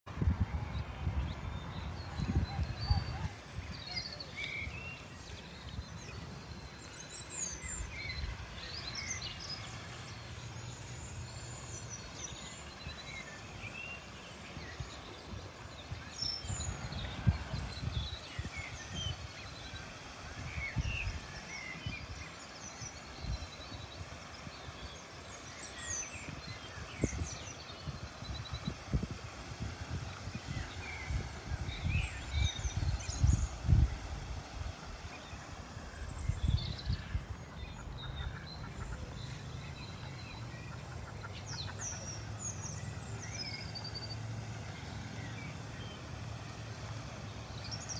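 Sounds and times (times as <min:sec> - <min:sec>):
wind gusts on microphone: 0:00.1 - 0:10.2, 0:11.0 - 0:40.6
small birds chirping: 0:01.1 - 0:29.0, 0:30.0 - 0:47.9.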